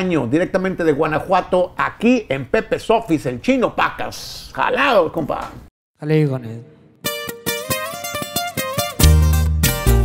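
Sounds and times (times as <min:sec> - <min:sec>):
acoustic guitars picking notes: 0:07.0 - 0:10.0.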